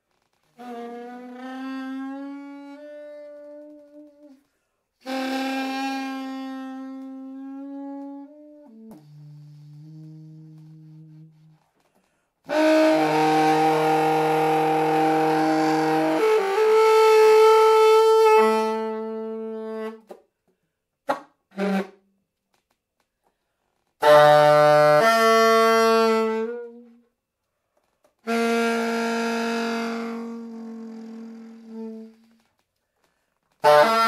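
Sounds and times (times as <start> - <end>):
alto saxophone multiphonic: 0.0 - 20.3, 21.0 - 22.8, 23.8 - 27.2, 27.8 - 34.0.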